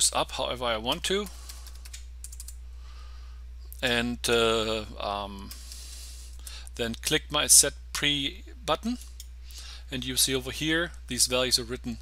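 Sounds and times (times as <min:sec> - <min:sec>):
steady low hum: 0:00.0 - 0:12.0
computer keyboard typing: 0:00.9 - 0:02.6.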